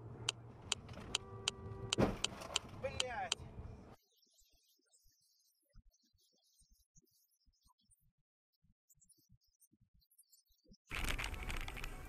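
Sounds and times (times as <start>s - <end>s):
turn signal relay ticking: 0.2s - 3.4s.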